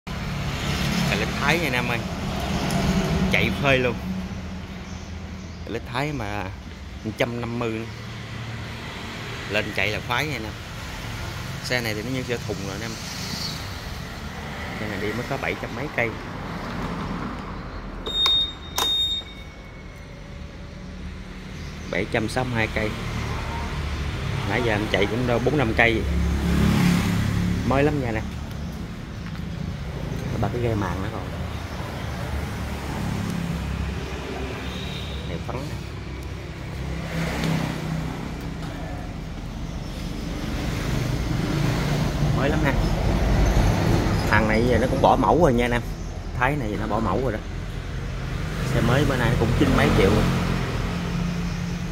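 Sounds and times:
motor vehicle engines humming: 0.0s - 51.9s
scooter buzzer beeps: 18.0s - 19.7s.

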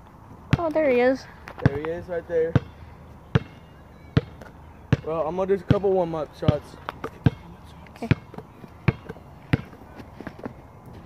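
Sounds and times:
basketball bouncing on asphalt: 0.5s - 11.0s.

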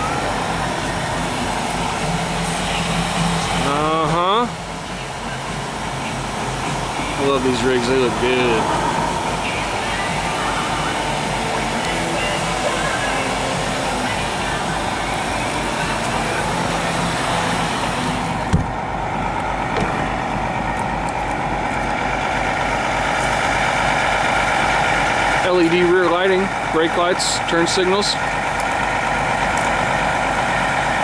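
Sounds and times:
diesel engine idling: 0.0s - 31.0s
single thump: 18.5s - 18.8s.

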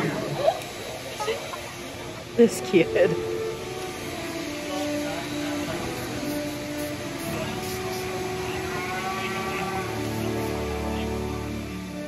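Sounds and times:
blower rushing noise: 0.0s - 12.0s.

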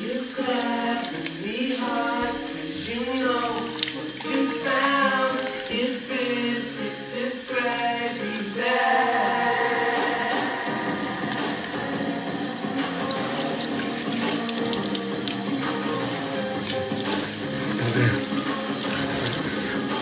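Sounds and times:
tap water running into sink: 0.0s - 6.9s, 9.7s - 20.0s
water splashing on face: 0.4s - 5.9s, 9.8s - 20.0s.

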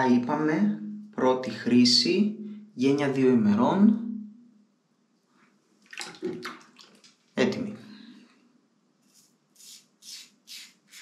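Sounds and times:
water splashing: 5.8s - 7.3s.

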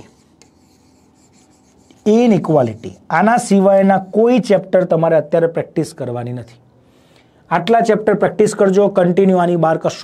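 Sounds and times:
chalk scratching on blackboard: 0.0s - 4.6s.

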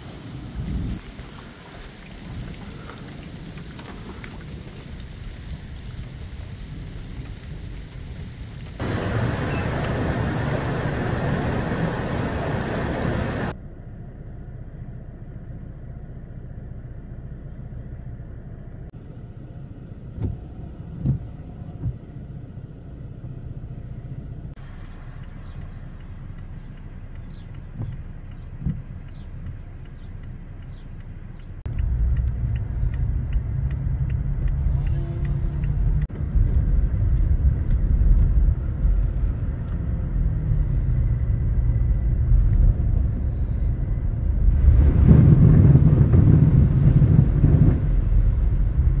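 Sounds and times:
car engine and tyre rumble: 0.0s - 49.0s.

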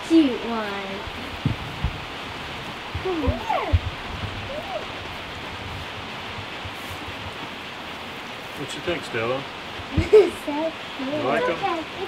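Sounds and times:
steady hiss: 0.0s - 12.0s
soft low bumps: 0.2s - 8.6s, 9.6s - 10.6s
straw rustling: 1.1s - 8.8s.

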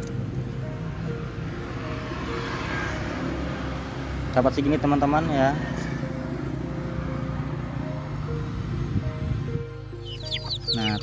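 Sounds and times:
road traffic rumble: 0.0s - 11.0s
simple melody of held notes: 9.2s - 11.0s.

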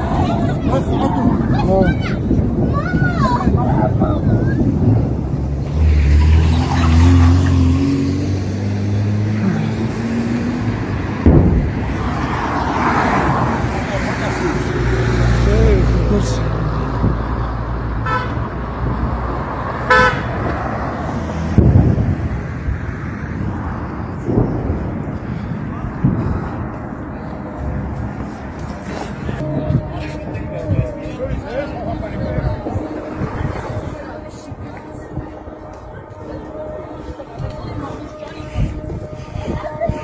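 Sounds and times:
car horn toots: 18.0s - 18.4s, 19.9s - 20.4s.

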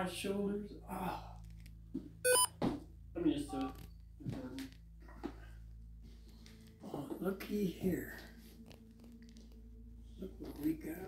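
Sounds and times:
electronic beep of stepped tones: 2.3s - 2.5s.

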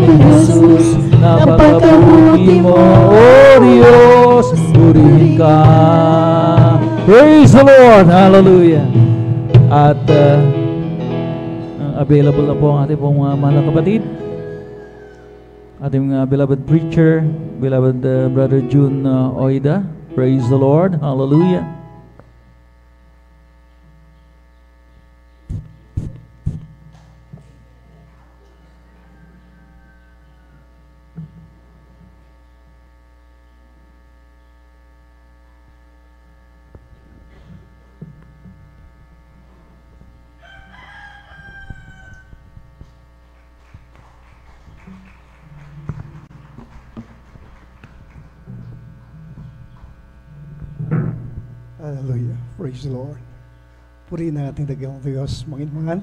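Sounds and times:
electrical mains hum: 0.0s - 56.0s
rooster crowing: 14.0s - 15.7s, 28.2s - 31.0s, 40.3s - 43.0s
dull thumps: 45.8s - 51.8s.

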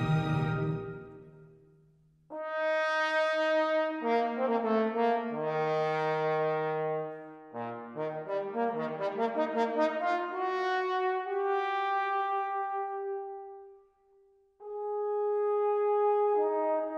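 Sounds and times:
sustained brass notes: 0.0s - 1.3s
orchestra: 0.0s - 1.5s.

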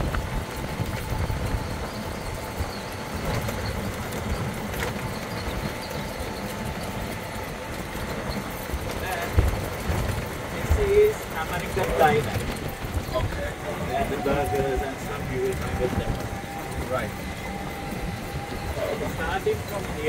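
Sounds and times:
cart tyres rumbling on paving: 0.0s - 20.0s
wind buffeting microphone: 0.0s - 20.0s.

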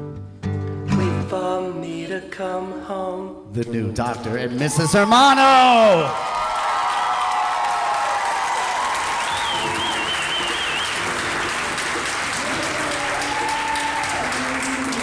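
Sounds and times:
crowd applauding: 4.2s - 15.0s.

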